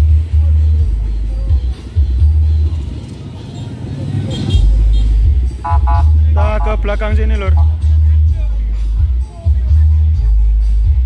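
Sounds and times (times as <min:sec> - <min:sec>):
heavy bass music from speakers: 0:00.0 - 0:11.0.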